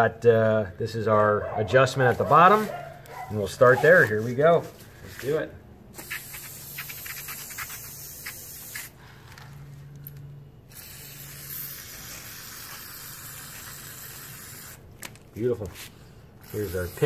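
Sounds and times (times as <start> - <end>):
aerosol spray hissing: 6.0 - 9.0, 10.7 - 14.8.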